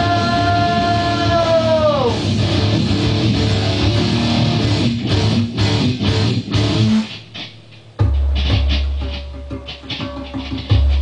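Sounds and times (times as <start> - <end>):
loud low heavy guitar part: 0.0 - 10.0
electric guitar strumming rock chords: 0.0 - 11.0.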